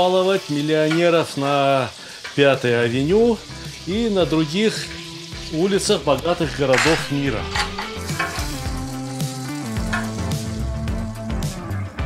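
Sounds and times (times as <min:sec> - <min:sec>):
background music with held notes: 0:00.0 - 0:12.0
beef sizzling in a pan: 0:00.0 - 0:12.0
spatula turning meat: 0:02.2 - 0:10.7.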